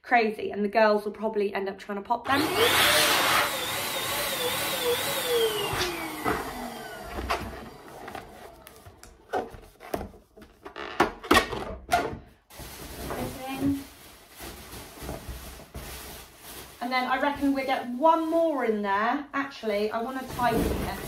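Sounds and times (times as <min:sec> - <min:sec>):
plastic bag rustling and crinkling: 0:12.5 - 0:18.8, 0:19.7 - 0:21.0.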